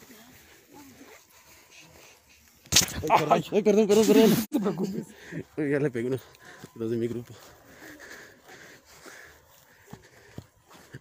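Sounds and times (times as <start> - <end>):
footsteps rustling on grass: 0.0 - 2.7
breathing close to microphone: 7.4 - 11.0.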